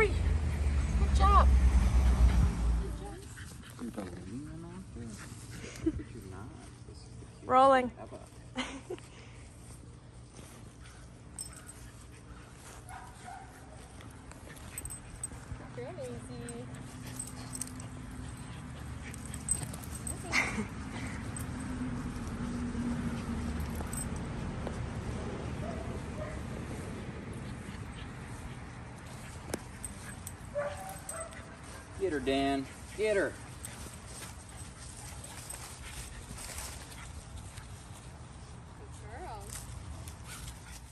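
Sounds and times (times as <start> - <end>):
dogs playing: 0.0 - 40.9.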